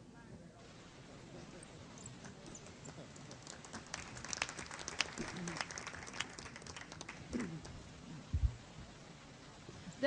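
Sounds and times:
audience applauding: 2.4 - 7.7.

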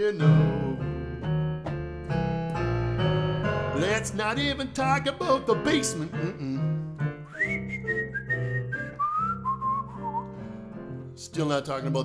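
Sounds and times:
digital keyboard chords: 0.2 - 7.3
man whistling a melody: 7.1 - 10.5.

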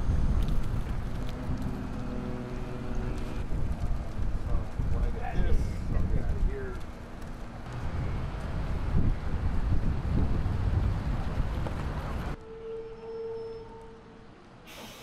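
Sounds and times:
outdoor street rumble: 0.0 - 15.0.

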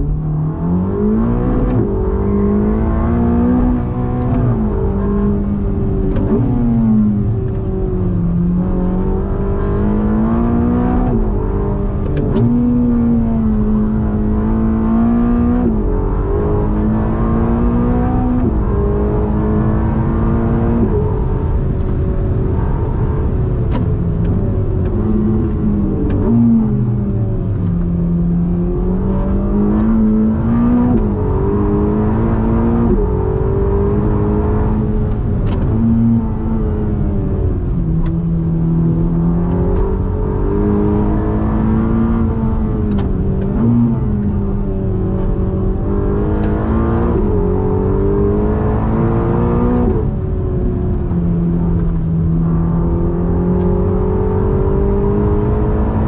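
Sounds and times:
car engine revving: 0.0 - 56.0.

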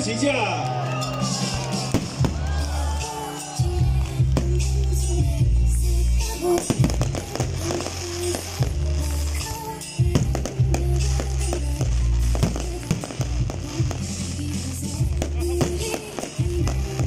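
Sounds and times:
loud music with heavy bass: 1.0 - 17.0
firework shells bursting: 6.2 - 17.0.

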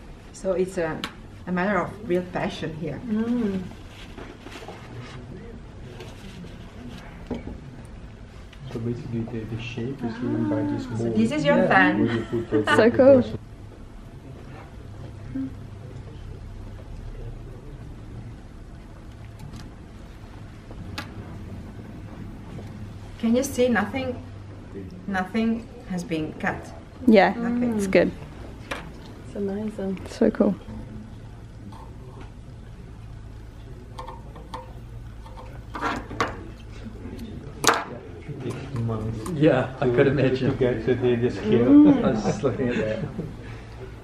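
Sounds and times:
low workshop hum: 0.0 - 44.0.

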